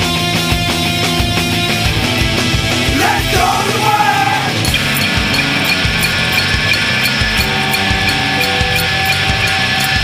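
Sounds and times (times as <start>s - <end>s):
drums with cymbal beat: 0.0s - 10.0s
guitars sustained chords: 0.0s - 10.0s.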